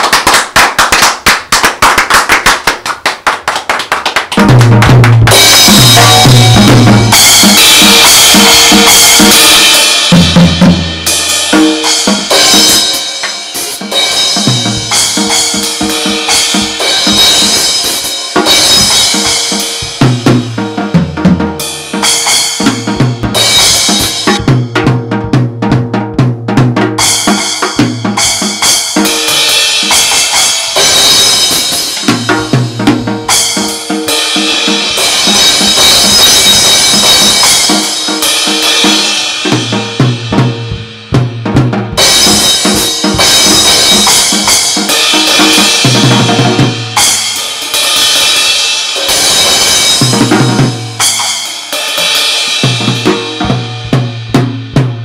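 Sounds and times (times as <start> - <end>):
drum kit played fast: 0.0 - 55.0
backing music with bass: 4.4 - 47.3, 52.6 - 55.0
cymbal crashes: 5.3 - 20.8, 21.6 - 24.9, 28.2 - 54.7.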